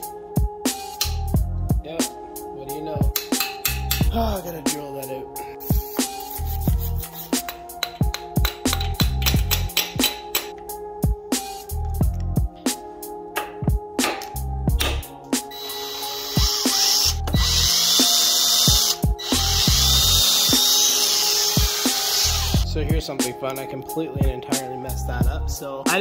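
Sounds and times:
hip-hop beat: 0.0 - 26.0
cordless drill whining: 15.5 - 22.6.

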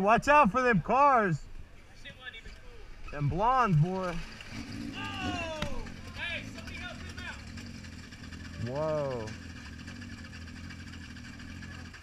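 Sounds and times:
motorcycle engines idling: 1.6 - 12.0
people calling out: 4.9 - 7.5.

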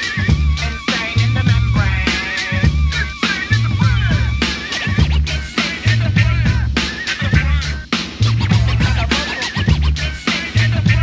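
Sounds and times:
hip hop beat with heavy bass: 0.0 - 11.0
turntable scratching: 0.0 - 11.0.

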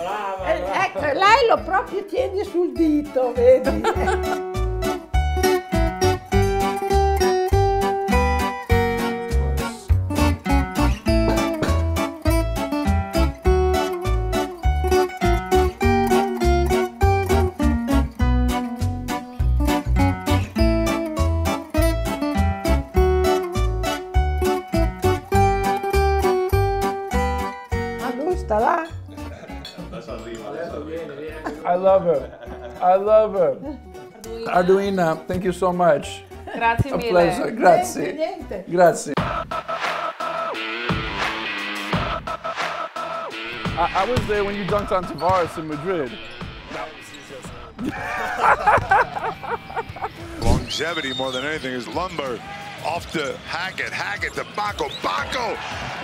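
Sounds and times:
men talking and laughing: 0.0 - 5.2, 11.0 - 12.2, 29.1 - 38.3, 43.9 - 56.0
background music with plucked strings: 0.0 - 39.1, 47.8 - 50.6
steady regular beat: 3.7 - 19.0, 39.2 - 46.8.

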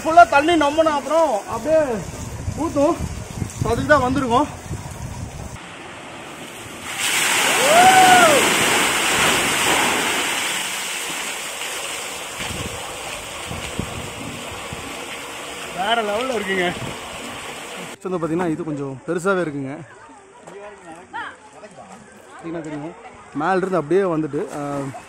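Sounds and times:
water pouring and splashing: 1.0 - 18.0
person yelling: 7.5 - 8.5.

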